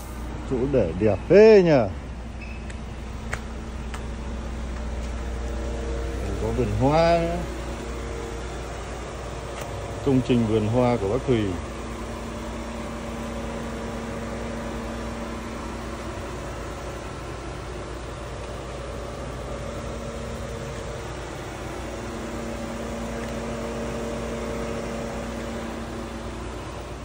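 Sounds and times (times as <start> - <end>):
steady mechanical hum: 0.0 - 27.0.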